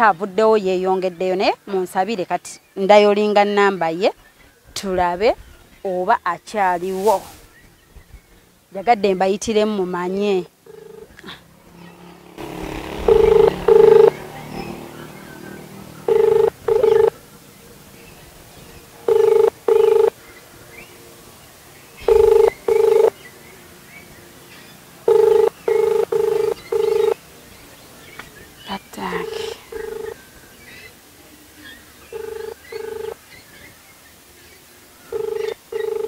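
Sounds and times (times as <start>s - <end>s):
phone ringback beeps: 10.7s - 11.2s, 13.0s - 14.2s, 16.1s - 17.1s, 19.1s - 20.1s, 22.0s - 23.1s, 25.1s - 27.2s, 29.2s - 30.2s, 32.1s - 33.2s, 35.1s - 36.0s.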